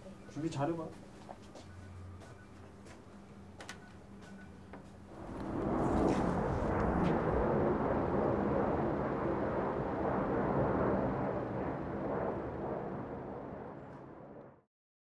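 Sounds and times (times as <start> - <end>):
jet airliner passing overhead: 1.6 - 14.7.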